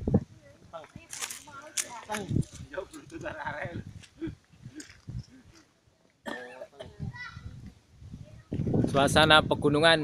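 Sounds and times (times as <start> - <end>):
people talking indistinctly: 0.4 - 10.0.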